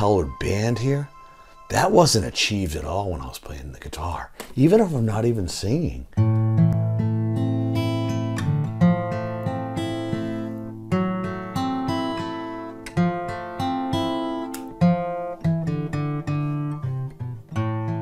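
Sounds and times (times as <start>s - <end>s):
acoustic guitar: 0.0s - 3.0s, 6.1s - 18.0s.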